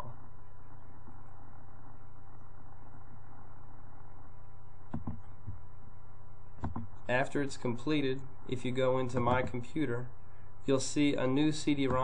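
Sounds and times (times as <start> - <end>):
faint steady tones: 0.0 - 12.0
low electrical hum: 0.0 - 12.0.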